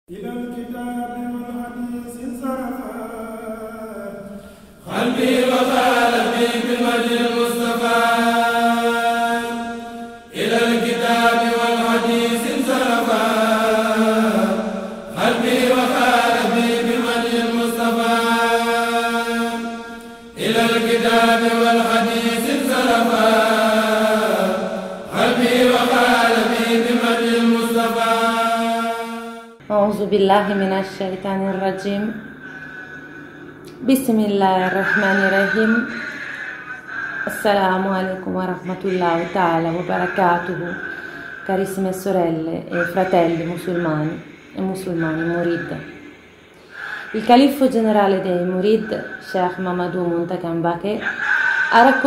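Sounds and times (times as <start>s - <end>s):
group chanting in unison: 2.0s - 29.6s, 34.7s - 49.4s, 50.8s - 52.0s
short breaths: 40.9s - 41.4s, 46.2s - 47.2s.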